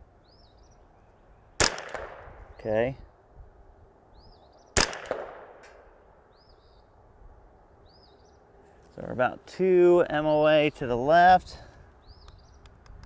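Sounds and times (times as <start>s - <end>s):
faint bird chirps: 0.2s - 1.6s, 4.1s - 4.8s, 6.2s - 7.0s, 7.8s - 8.6s, 12.0s - 12.7s
rifle shot with echo: 1.6s - 2.6s, 4.8s - 6.2s.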